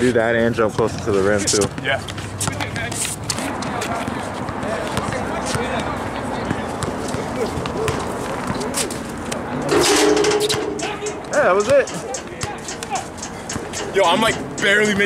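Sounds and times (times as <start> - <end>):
players chatting: 0.0 - 15.0.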